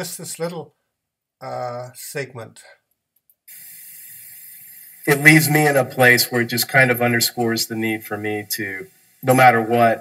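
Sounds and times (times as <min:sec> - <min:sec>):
steady background hiss: 0:03.5 - 0:10.0.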